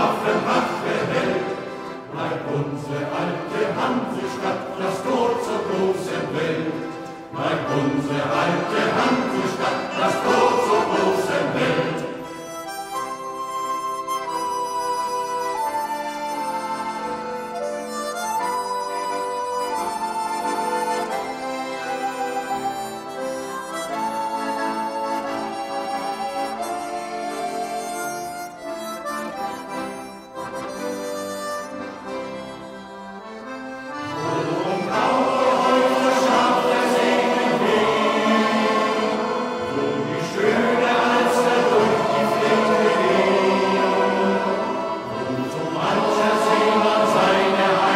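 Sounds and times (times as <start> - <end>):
men's choir singing: 0.0 - 12.6, 33.9 - 47.9
accordion playing: 0.0 - 47.9.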